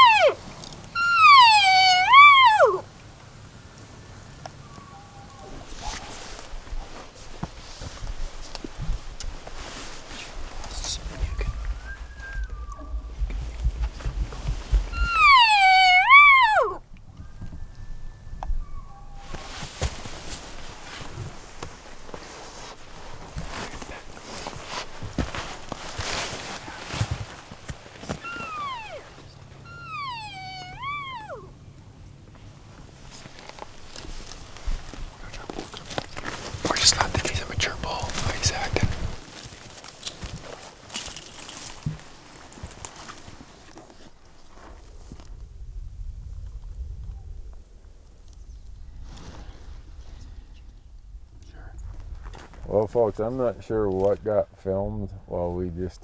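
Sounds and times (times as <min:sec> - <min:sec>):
elk calling: 0:00.0 - 0:02.9, 0:04.6 - 0:06.2, 0:14.7 - 0:19.6, 0:28.1 - 0:31.7.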